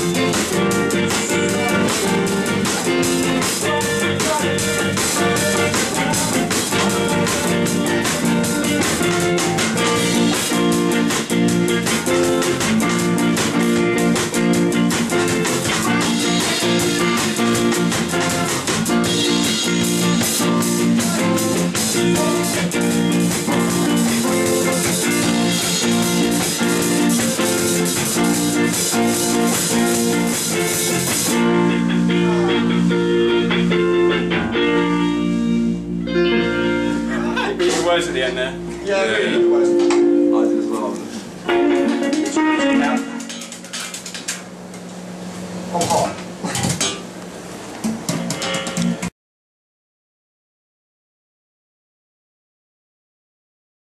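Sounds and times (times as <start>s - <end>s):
drums and cymbals: 0.0s - 32.9s, 45.7s - 49.1s
bass guitar: 0.0s - 44.9s, 45.6s - 47.1s, 47.7s - 49.1s
electric guitars: 0.0s - 47.0s, 47.8s - 49.1s.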